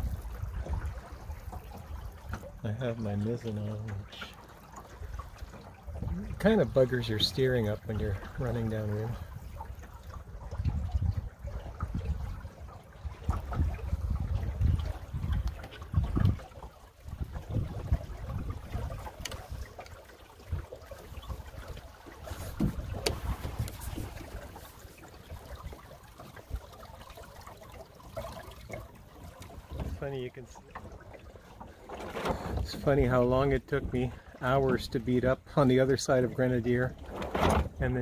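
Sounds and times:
water gurgling along a hull: 0.0 - 38.0.

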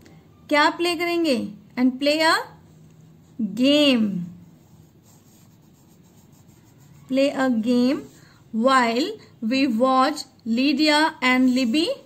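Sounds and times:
pencil scratching on paper: 4.4 - 8.2.

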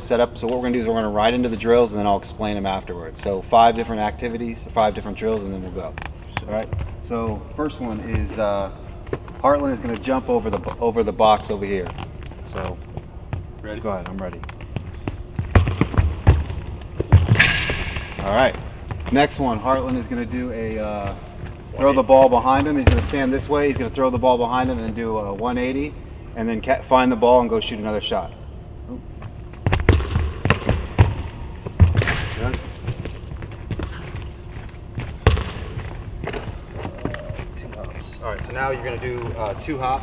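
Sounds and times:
running footsteps on hardwood court: 9.0 - 25.6, 29.2 - 40.0
heavy thumps of shoes: 12.5 - 20.2, 29.5 - 38.6.

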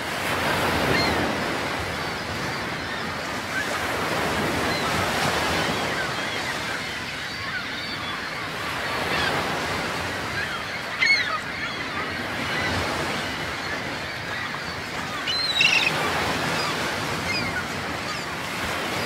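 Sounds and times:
ocean surf wash: 0.0 - 19.0
short bird calls: 15.2 - 17.7.

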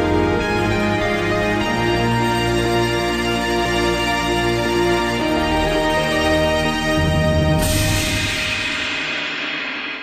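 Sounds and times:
cymbal crash ringing: 7.6 - 10.0.

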